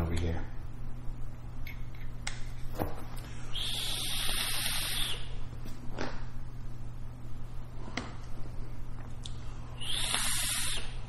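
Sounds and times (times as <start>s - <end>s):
electrical hum: 0.0s - 11.0s
vape draw hiss: 3.5s - 5.3s, 9.8s - 11.0s.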